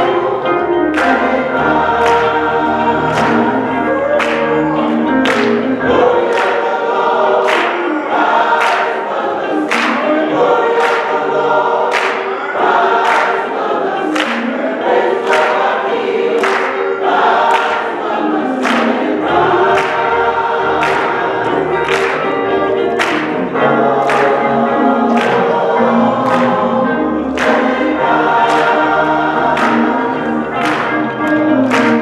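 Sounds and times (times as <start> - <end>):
electric guitar: 0.0 - 8.6, 13.6 - 32.0
choir singing gospel: 0.0 - 32.0.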